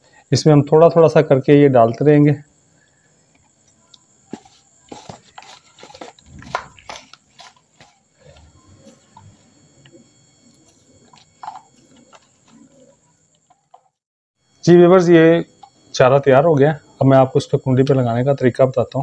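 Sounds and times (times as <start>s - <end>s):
hands kneading wet dough: 4.9s - 9.3s.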